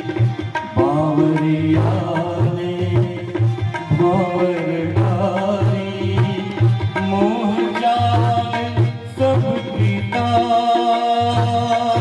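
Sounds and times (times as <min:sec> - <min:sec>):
harmonium: 0:00.0 - 0:12.0
tabla: 0:00.0 - 0:12.0
man singing devotional chant: 0:00.6 - 0:12.0.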